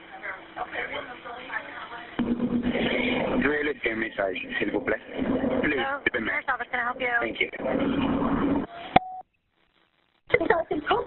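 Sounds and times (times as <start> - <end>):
noisy telephone line: 0.0 - 11.0
short steady beep: 9.0 - 9.2.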